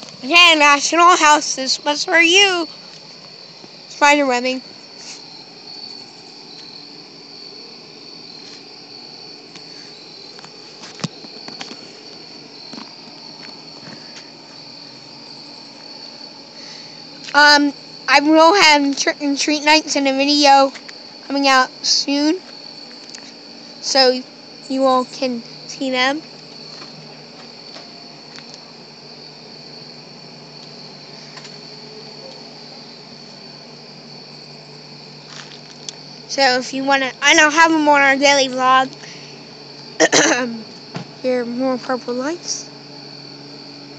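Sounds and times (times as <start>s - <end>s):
crickets chirping: 0.0s - 43.9s.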